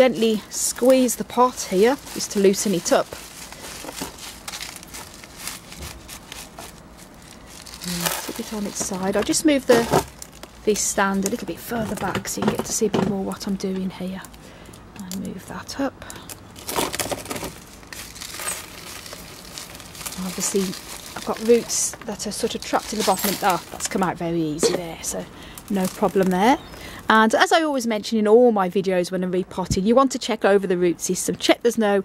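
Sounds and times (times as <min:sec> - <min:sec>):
plastic plant pot crinkling: 0:00.0 - 0:26.8.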